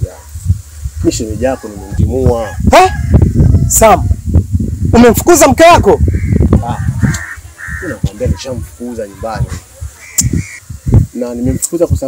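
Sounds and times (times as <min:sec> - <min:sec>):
bird calling: 0:06.0 - 0:11.8.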